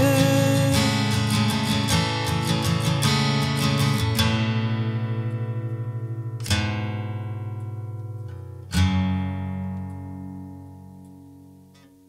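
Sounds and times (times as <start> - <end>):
guitar chords ringing: 0.0 - 12.0.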